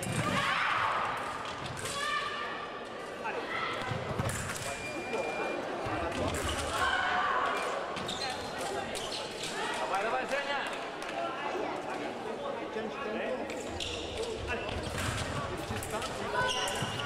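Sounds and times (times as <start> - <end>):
voices and shouts in hall: 0.0 - 17.0
short steady beep: 4.7 - 5.6.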